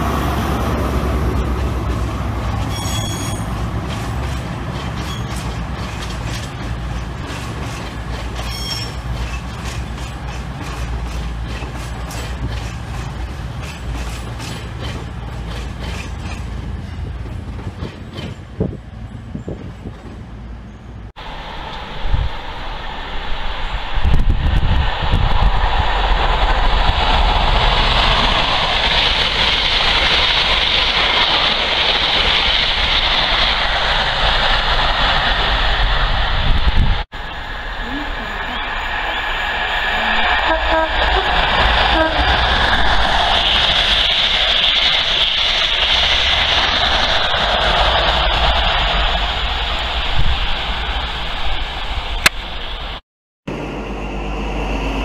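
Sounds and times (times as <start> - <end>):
train passing at speed: 0.0 - 55.0.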